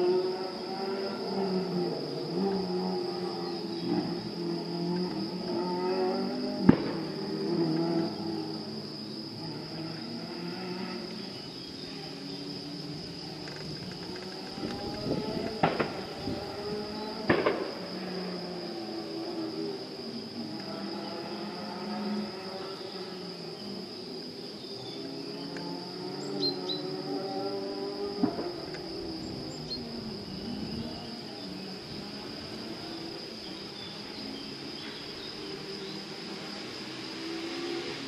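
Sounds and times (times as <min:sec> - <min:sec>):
crickets chirping: 0:00.0 - 0:38.0.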